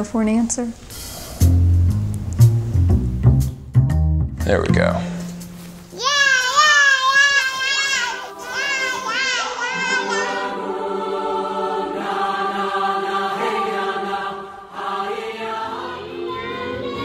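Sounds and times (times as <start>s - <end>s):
choral music: 4.6s - 17.0s
child's high voice sweeping: 5.9s - 10.5s.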